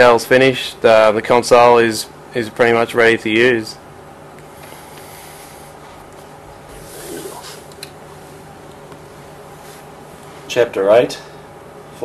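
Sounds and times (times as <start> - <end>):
low-level buzz: 0.0 - 12.0
even hiss: 6.7 - 7.8.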